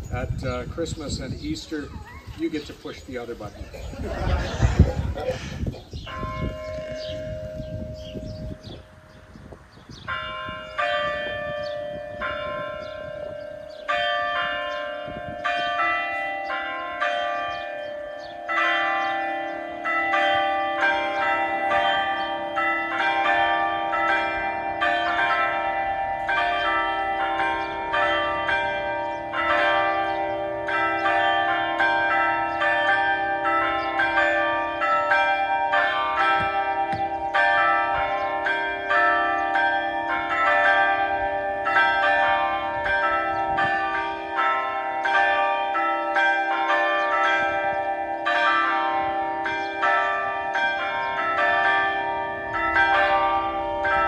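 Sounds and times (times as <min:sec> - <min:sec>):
church bells ringing a peal: 0:00.0 - 0:54.0.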